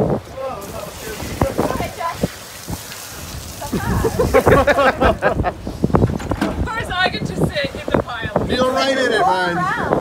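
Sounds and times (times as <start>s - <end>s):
steady hiss like spray: 0.4s - 6.1s.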